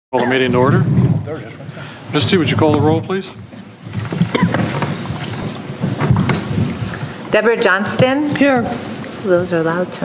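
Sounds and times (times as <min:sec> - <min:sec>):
low room noise rumble: 0:00.2 - 0:10.0.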